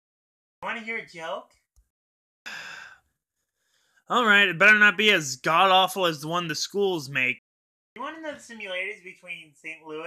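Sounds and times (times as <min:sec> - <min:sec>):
man sighing: 0:02.5 - 0:03.0.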